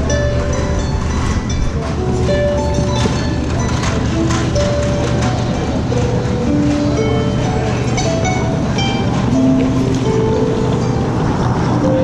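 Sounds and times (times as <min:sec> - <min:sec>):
harp melody: 0:00.0 - 0:12.0
luggage cart rolling on floor: 0:00.0 - 0:12.0.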